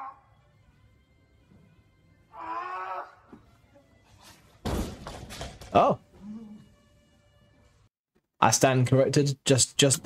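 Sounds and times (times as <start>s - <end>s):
barbell crashing to floor: 4.6s - 5.6s.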